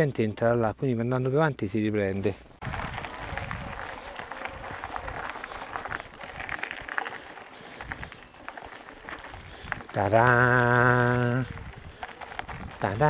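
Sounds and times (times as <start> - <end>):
bike tyres crunching on gravel: 2.6 - 13.0
small clicks from stones: 2.9 - 10.4, 11.0 - 13.0
high-pitched electronic beep: 8.2 - 8.4.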